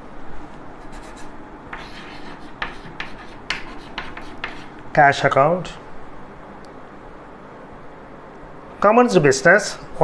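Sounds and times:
chalk scratching on blackboard: 0:00.8 - 0:04.8
chalk tap: 0:01.7 - 0:04.8.

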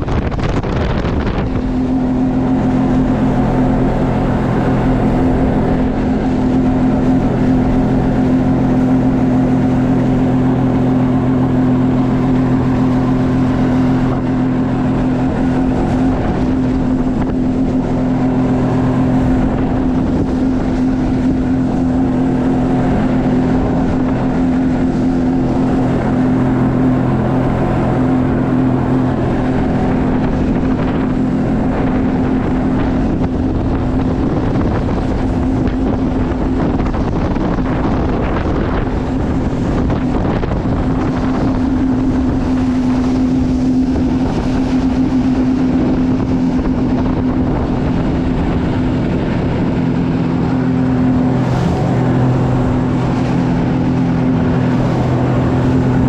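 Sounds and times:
personal watercraft engine running: 0:00.0 - 0:56.0.

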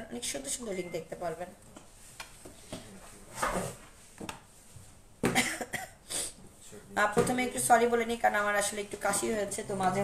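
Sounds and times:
woman coughing: 0:05.2 - 0:06.1.

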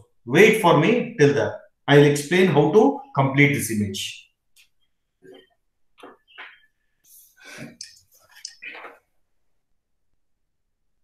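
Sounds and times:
person whispering: 0:07.4 - 0:09.0.

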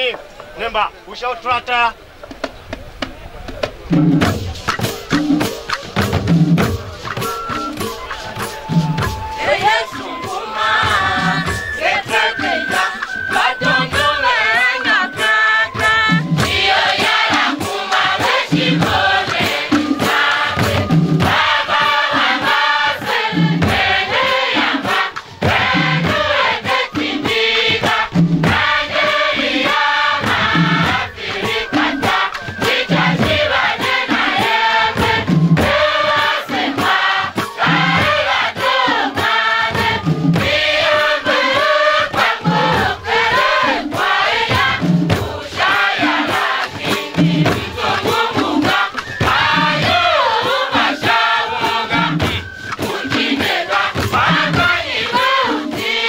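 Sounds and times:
hand drums beating: 0:02.2 - 0:56.0
group singing together: 0:03.9 - 0:56.0.

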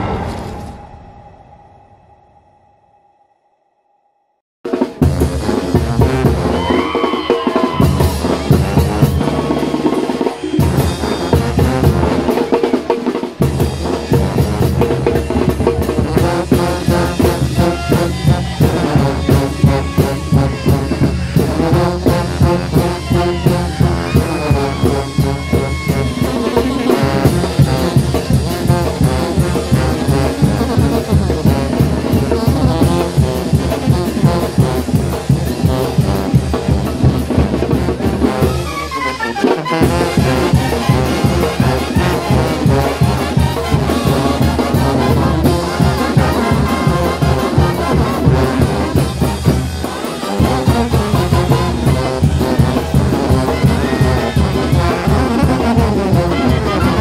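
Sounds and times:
brass and clarinets: 0:04.7 - 0:57.0
steady drum beat: 0:04.7 - 0:57.0
sousaphones playing bass line: 0:05.0 - 0:12.6, 0:13.4 - 0:57.0.

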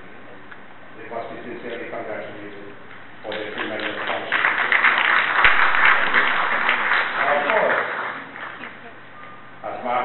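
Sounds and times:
audience applauding: 0:03.3 - 0:08.8.

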